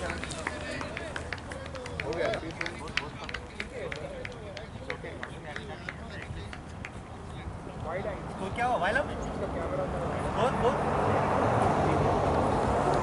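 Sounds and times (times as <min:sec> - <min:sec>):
distant people talking: 0:00.0 - 0:12.6.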